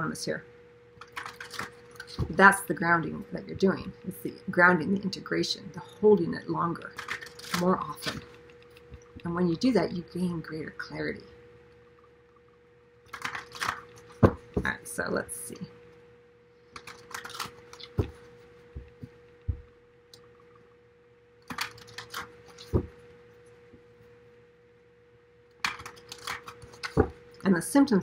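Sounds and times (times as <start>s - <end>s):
faint steady hum: 0.0s - 28.0s
cards being shuffled: 1.0s - 2.4s, 6.9s - 9.1s, 13.1s - 14.8s, 16.8s - 19.2s, 21.5s - 23.0s, 25.6s - 27.2s.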